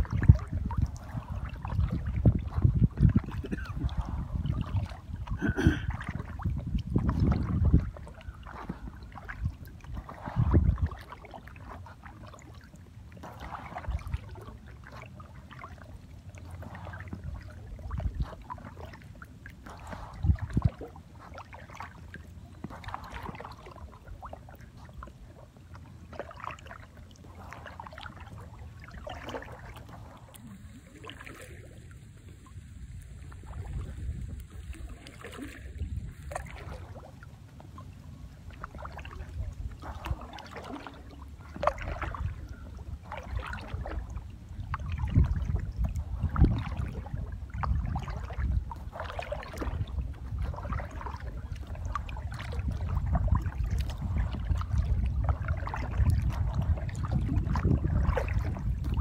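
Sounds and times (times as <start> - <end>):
paddle splashing in water: 0.0 - 59.0.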